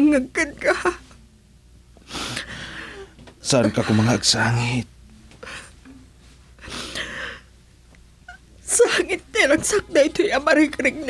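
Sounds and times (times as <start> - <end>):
person gasping: 2.1 - 3.2, 6.6 - 7.5.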